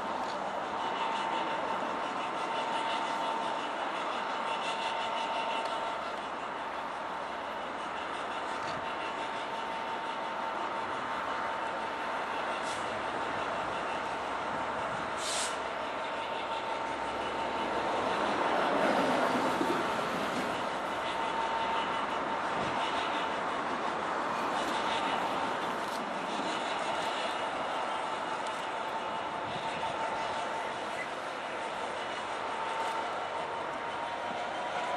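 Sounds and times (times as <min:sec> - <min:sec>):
diesel locomotive engine running: 0:00.0 - 0:34.9
brief high hiss: 0:15.2 - 0:15.6.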